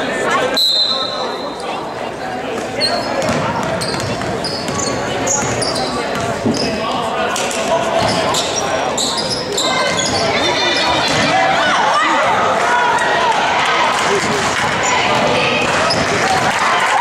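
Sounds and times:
voices echoing in gym: 0.0 - 17.0
sneaker squeaks: 2.6 - 7.0, 7.9 - 11.7, 15.8 - 16.2.

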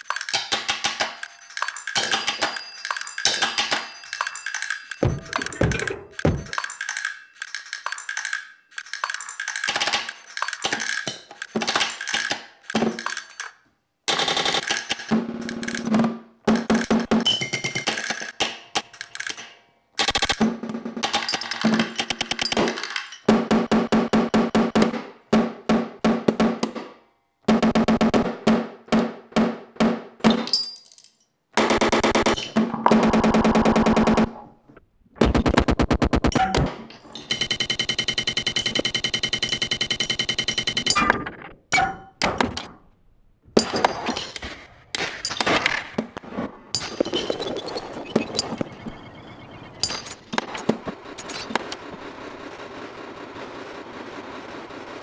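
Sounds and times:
percussive hits with ringing tails: 0.2 - 7.1
processed snare drum hits: 5.0 - 6.7.

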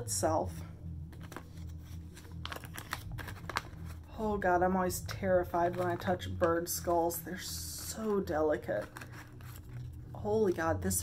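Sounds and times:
plastic bag crinkling: 1.2 - 4.2, 7.7 - 10.6.

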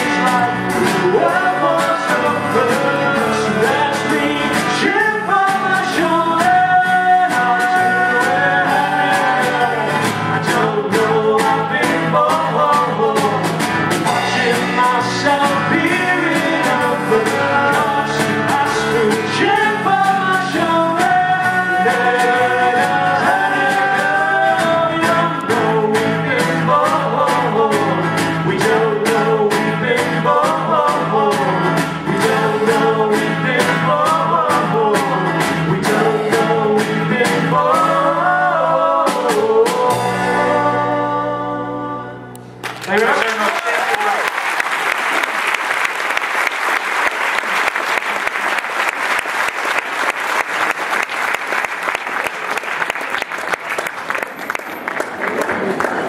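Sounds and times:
voices singing: 0.0 - 42.3
acoustic guitar: 0.0 - 42.8
upright double bass: 0.0 - 42.8.

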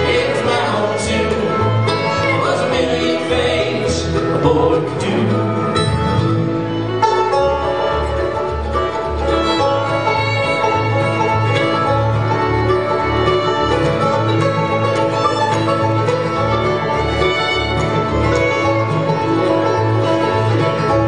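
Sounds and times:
bluegrass band playing: 0.0 - 21.0
pulsing bass line: 0.0 - 21.0.

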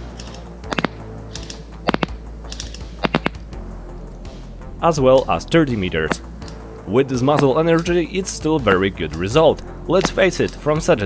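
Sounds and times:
quiet background music: 0.0 - 11.0
airsoft pistol shot clicks: 0.1 - 3.4.

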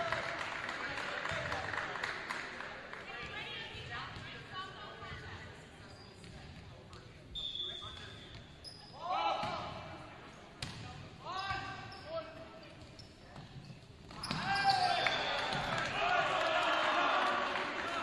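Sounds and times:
players shouting: 14.3 - 18.0.

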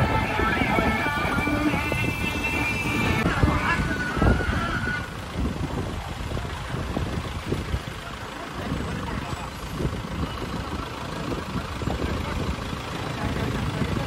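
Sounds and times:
background voices: 0.0 - 14.0
motorcycles: 0.0 - 14.0
vehicle engines running: 0.0 - 14.0.

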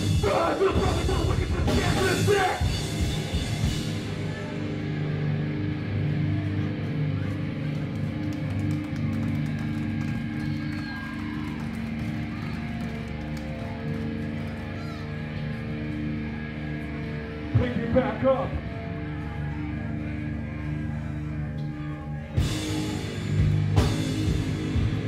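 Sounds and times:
electric guitars and bass droning: 0.0 - 25.0.

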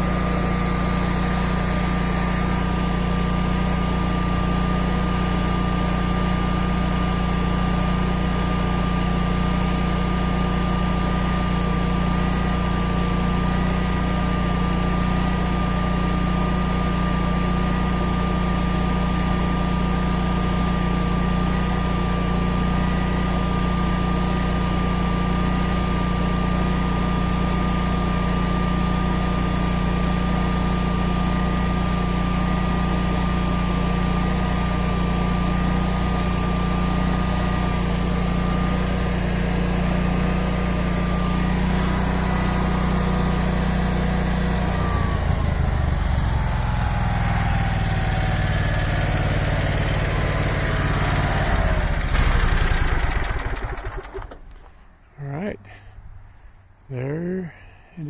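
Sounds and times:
generator running: 0.0 - 58.0
electric motor whine: 30.6 - 54.4.

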